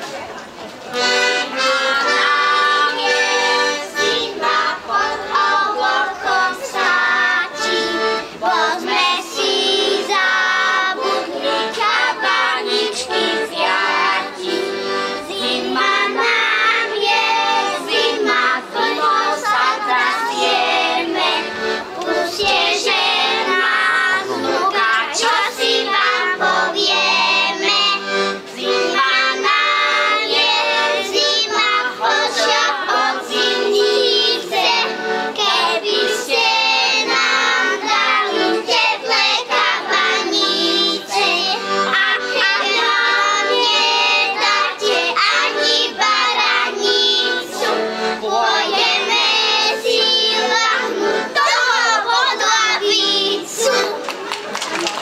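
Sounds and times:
children singing into microphones: 1.0 - 54.1.

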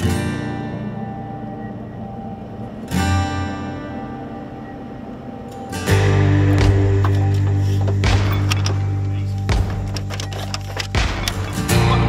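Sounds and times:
strummed acoustic guitar chords: 0.0 - 12.0.

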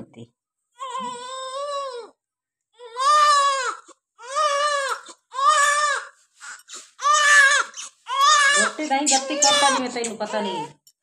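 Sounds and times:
newborn baby crying: 0.7 - 2.2, 2.8 - 10.8.

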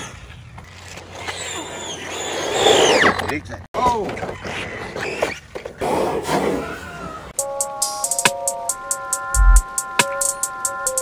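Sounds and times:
rc truck electric motor whining: 1.2 - 3.1.

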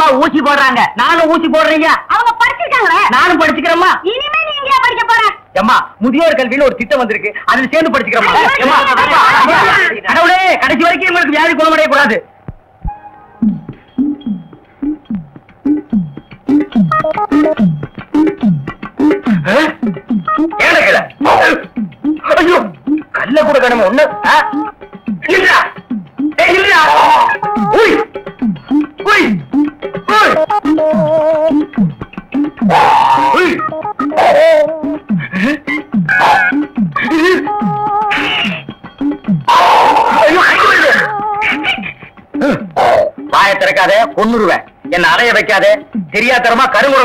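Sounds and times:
man whimpering and yelping: 19.1 - 43.4.

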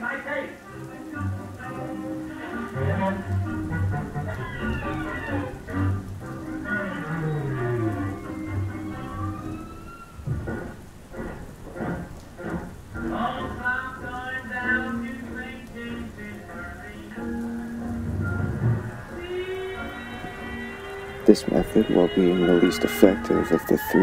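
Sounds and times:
rain: 0.0 - 24.0
music with low sliding notes: 0.8 - 24.0
thunder: 2.8 - 15.0, 17.4 - 21.6.

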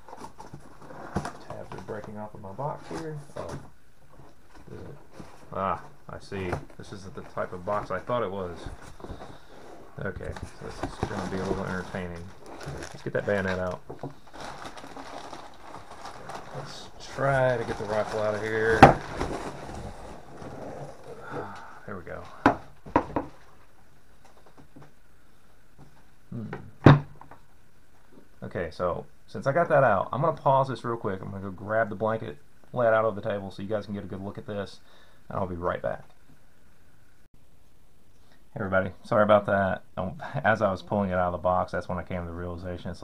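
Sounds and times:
cardboard box rustling and scraping: 17.6 - 21.0.

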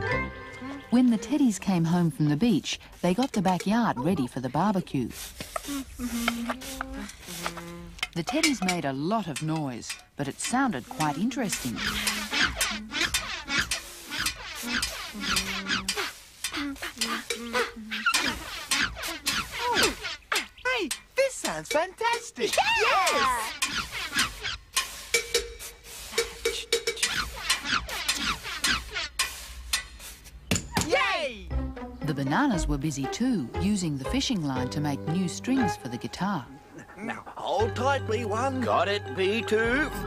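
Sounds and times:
handsaw cutting wood: 5.1 - 7.7, 10.5 - 20.5, 22.4 - 30.3
person saying a word: 5.7 - 7.9
sharp knocks: 30.5 - 31.0
synthesized music: 37.6 - 40.0.

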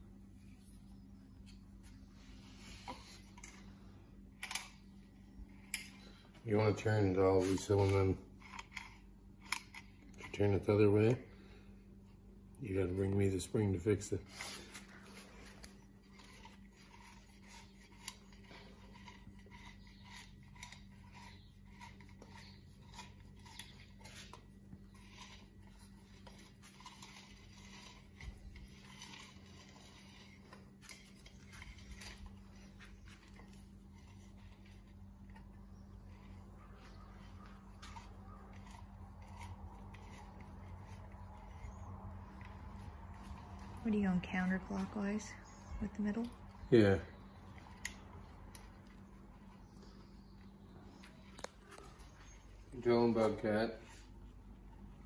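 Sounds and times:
steady low hum: 0.0 - 55.0
recoil starter clicking and scraping: 5.6 - 11.1, 14.4 - 43.7.

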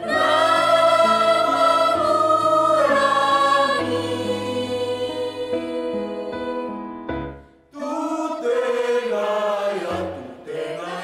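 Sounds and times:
mixed choir singing: 0.0 - 6.9, 7.8 - 11.0.

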